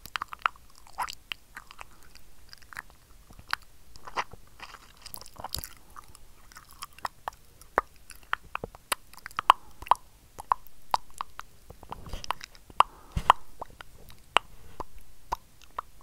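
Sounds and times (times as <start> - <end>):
wet lip and tongue clicks: 0.0 - 16.0.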